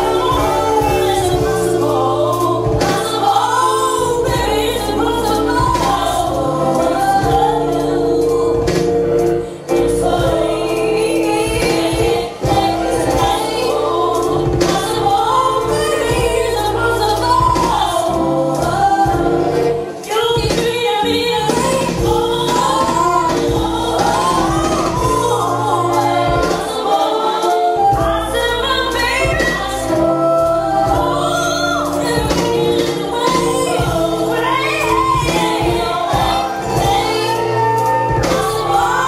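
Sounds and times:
backing track with bass: 0:00.0 - 0:39.0
woman singing into a microphone: 0:00.0 - 0:39.0.

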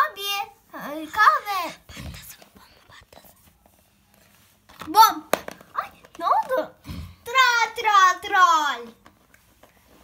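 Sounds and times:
child whispering: 0:00.7 - 0:03.4.

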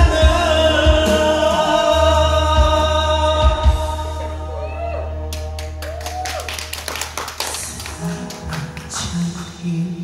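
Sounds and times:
audience clapping: 0:05.3 - 0:09.6.

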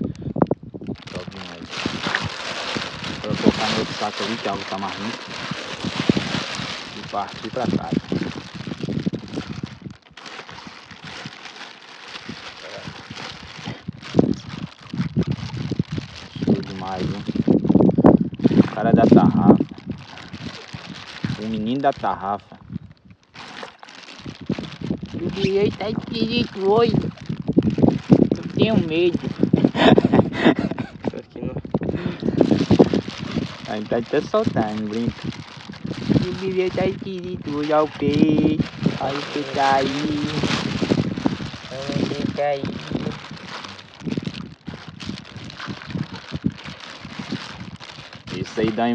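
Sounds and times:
plastic bag crinkling: 0:00.8 - 0:31.2, 0:32.0 - 0:48.9.

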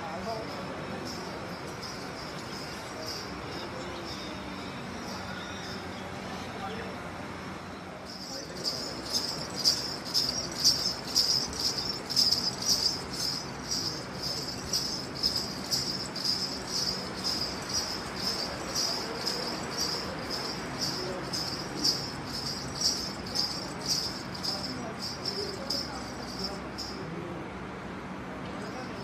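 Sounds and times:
ankle bells jingling: 0:00.0 - 0:06.9, 0:08.0 - 0:27.2, 0:28.6 - 0:29.0.

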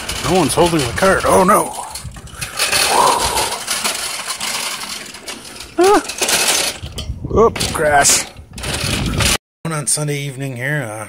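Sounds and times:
shopping cart rattling on asphalt: 0:00.0 - 0:09.4.

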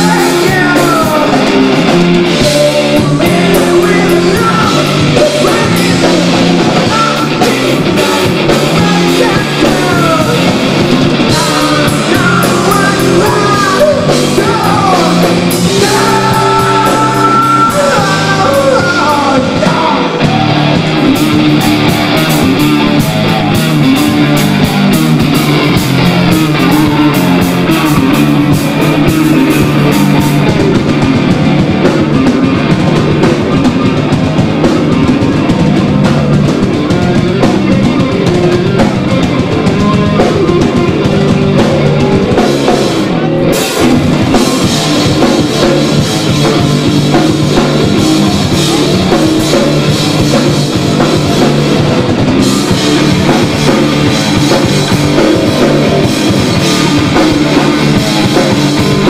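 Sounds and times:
drum kit: 0:00.0 - 0:59.0
electric guitars: 0:00.0 - 0:59.0.

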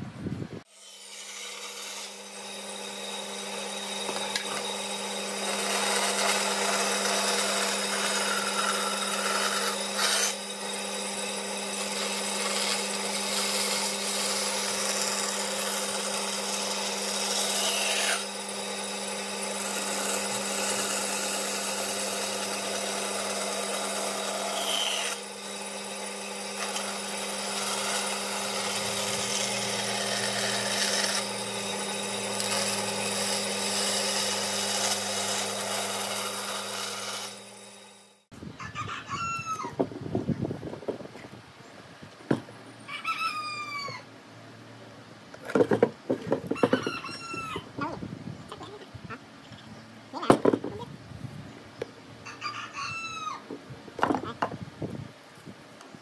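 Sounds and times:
bandsaw cutting wood: 0:00.6 - 0:38.3
rooster crowing: 0:38.6 - 0:39.8, 0:42.8 - 0:44.1, 0:46.6 - 0:47.7, 0:52.2 - 0:53.5.

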